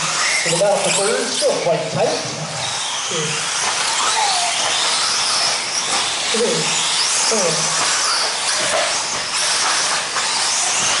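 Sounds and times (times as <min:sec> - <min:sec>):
electric buggy motors whining: 0:00.0 - 0:11.0
tyre and track noise: 0:00.0 - 0:11.0.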